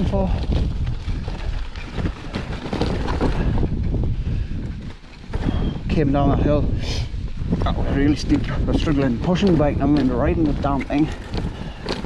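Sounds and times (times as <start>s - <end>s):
bike rattling on rocky trail: 0.0s - 12.0s
wind buffeting microphone: 0.0s - 12.0s.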